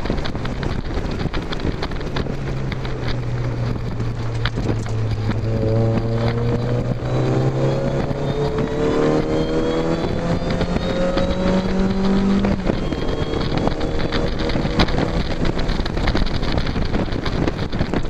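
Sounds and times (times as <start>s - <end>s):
car engine accelerating hard: 0.0s - 18.0s
wind rushing: 0.0s - 18.0s.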